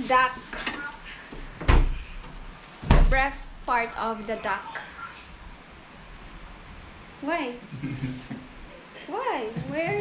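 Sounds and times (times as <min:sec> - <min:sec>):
refrigerator door thumping shut: 0:01.6 - 0:02.0.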